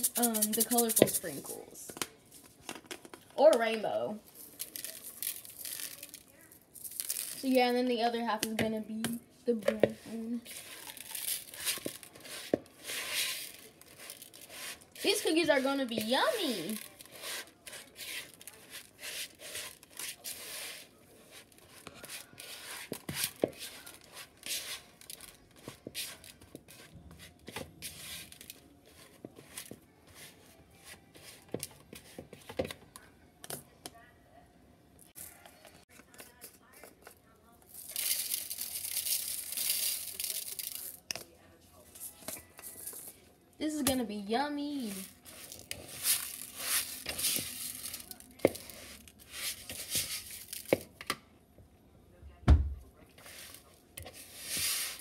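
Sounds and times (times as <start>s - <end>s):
spatula scraping cookie dough: 0.0s - 1.7s, 9.6s - 32.7s, 44.8s - 50.8s, 53.2s - 55.0s.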